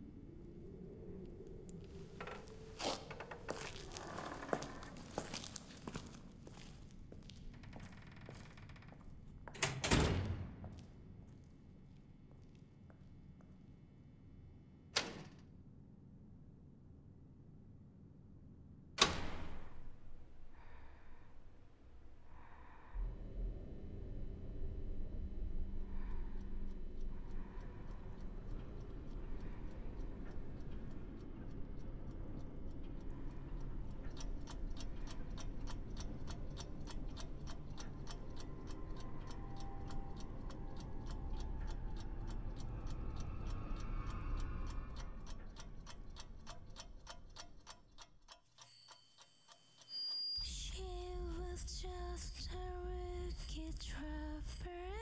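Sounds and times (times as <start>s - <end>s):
low dark rumbling drone: 20.3s - 46.5s
clock ticking: 25.6s - 50.1s.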